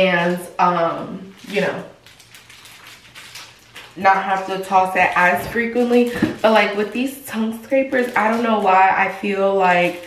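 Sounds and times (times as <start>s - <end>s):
plastic packet crinkling: 0.0s - 10.0s.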